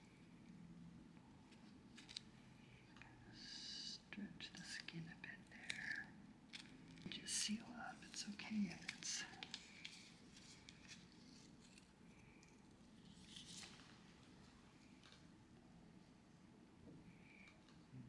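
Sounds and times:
adhesive film crinkling: 1.5s - 2.3s, 8.0s - 12.0s.

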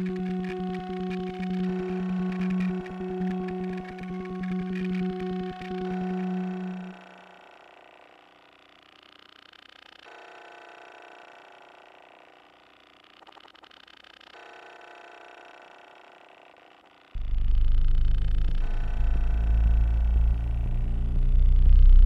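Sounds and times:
sustained electronic tones: 0.0s - 7.4s, 17.2s - 22.0s
rapid electronic flutter: 17.2s - 22.0s.

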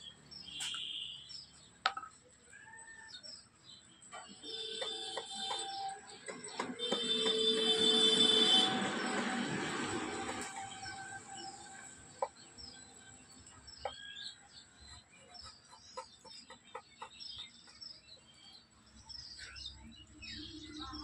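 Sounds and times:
small birds chirping: 0.0s - 9.4s, 10.4s - 21.0s.

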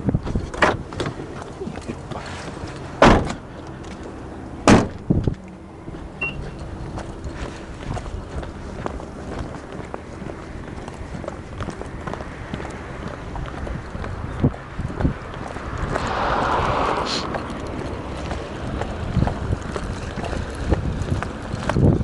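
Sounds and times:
car door slamming: 3.0s - 3.4s, 4.6s - 5.1s
footsteps on concrete: 5.2s - 21.8s.

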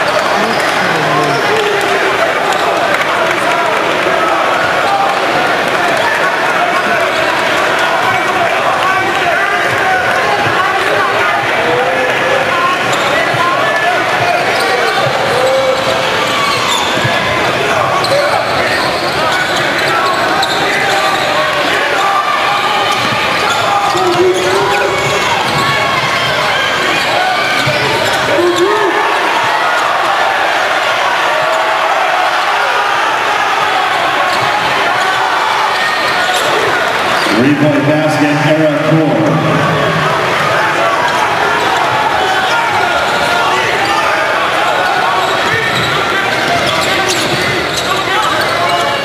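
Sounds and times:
crowd hubbub: 0.0s - 49.0s.

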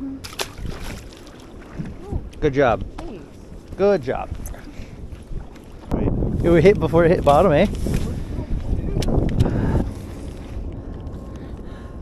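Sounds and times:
wind buffeting microphone: 0.1s - 12.0s.

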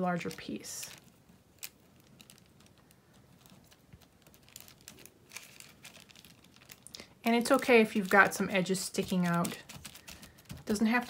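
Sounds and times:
paper strips rustling: 0.0s - 11.0s.

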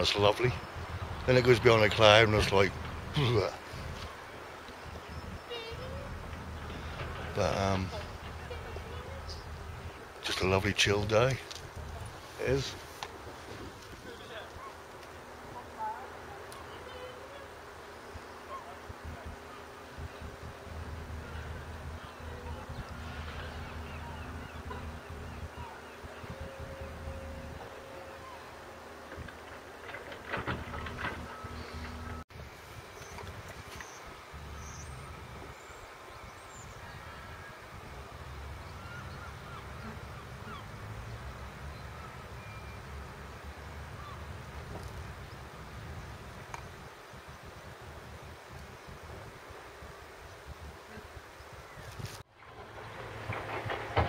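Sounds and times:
wind buffeting microphone: 0.0s - 54.0s
knocks and rustles: 29.0s - 32.2s, 51.9s - 54.0s.

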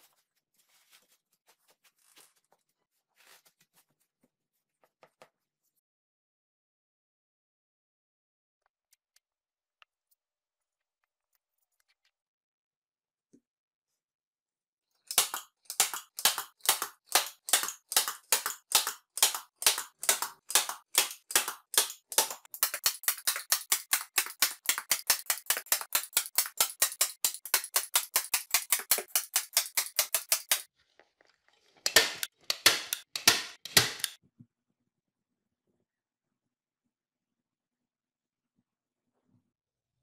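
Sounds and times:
staple gun firing: 32.0s - 34.2s.

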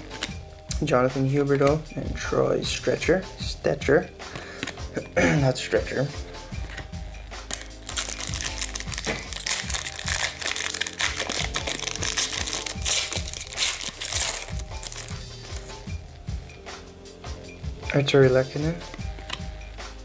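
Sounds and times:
quiet background music: 0.0s - 20.0s
foil wrapper crinkling: 7.5s - 15.7s.

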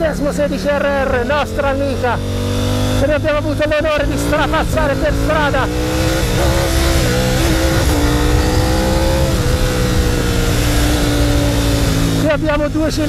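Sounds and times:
motorcycle engine at speed: 0.0s - 13.0s
wind rush on microphone: 5.6s - 12.2s.

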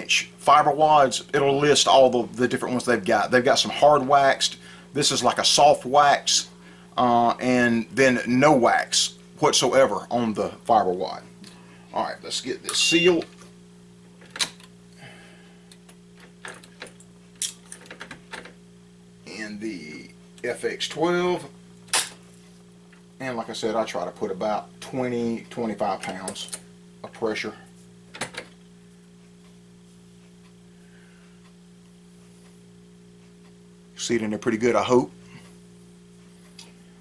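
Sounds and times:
steady low hum: 0.0s - 37.0s.

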